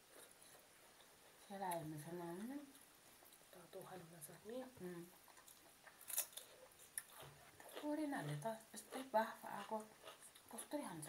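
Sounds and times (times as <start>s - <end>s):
crunching raw vegetable: 5.3s - 10.7s.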